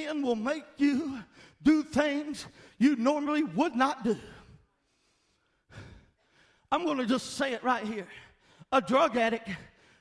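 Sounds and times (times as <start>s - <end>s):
man speaking: 0.0s - 4.6s, 6.7s - 9.8s.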